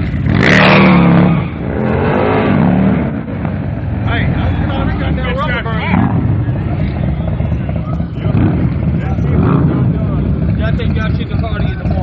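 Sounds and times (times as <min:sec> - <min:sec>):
motorcycle engines rumbling: 0:00.0 - 0:12.0
people talking: 0:04.0 - 0:12.0.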